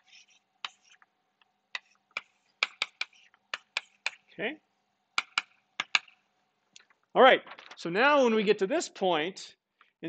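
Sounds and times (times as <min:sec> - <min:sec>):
chalk tapping on blackboard: 0:00.0 - 0:01.0, 0:01.7 - 0:04.3, 0:05.2 - 0:06.2.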